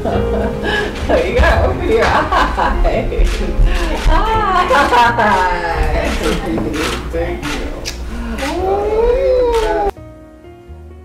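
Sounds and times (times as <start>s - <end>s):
gentle instrumental music: 0.0s - 11.0s
person crying out high-pitched: 8.4s - 9.9s.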